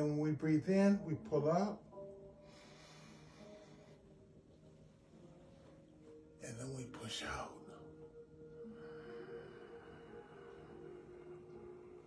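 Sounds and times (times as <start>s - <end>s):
faint background music: 0.0s - 12.0s
man breathing in: 2.4s - 4.2s.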